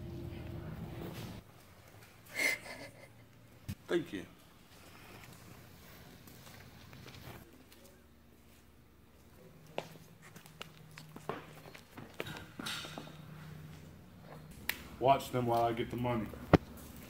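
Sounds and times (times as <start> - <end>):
footsteps on concrete: 9.6 - 12.7.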